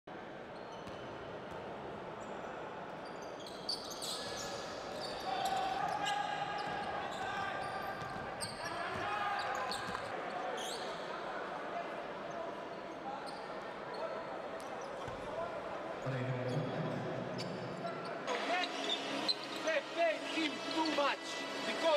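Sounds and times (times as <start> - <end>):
indistinct crowd voices: 0.1 - 21.9.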